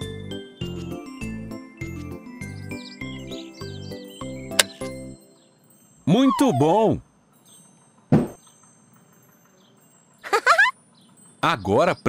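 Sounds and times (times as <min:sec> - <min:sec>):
cartoon thump: 0:08.1 - 0:08.4
high rising squeak: 0:10.2 - 0:10.7.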